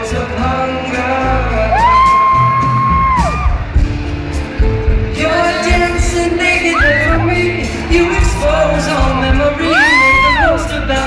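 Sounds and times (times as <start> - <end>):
acoustic guitar: 0.0 - 11.0
bass: 0.0 - 11.0
drums: 0.0 - 11.0.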